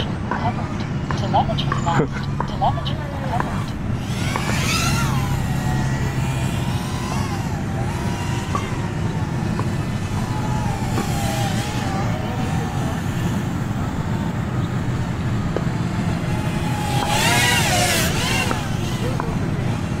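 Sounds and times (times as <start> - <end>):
drone motors whining: 0.0 - 20.0.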